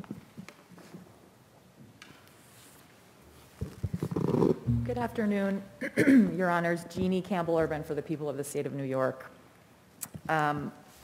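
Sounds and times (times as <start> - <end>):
microphone handling knocks: 3.6 - 5.3
person speaking: 4.7 - 8.2.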